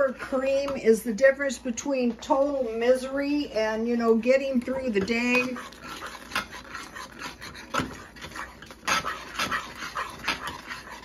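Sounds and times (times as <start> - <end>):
metal spoon stirring thick sauce: 4.8 - 11.0.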